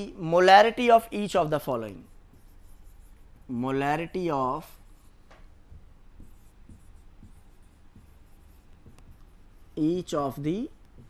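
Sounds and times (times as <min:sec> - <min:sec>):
marker writing on whiteboard: 0:00.6 - 0:11.0.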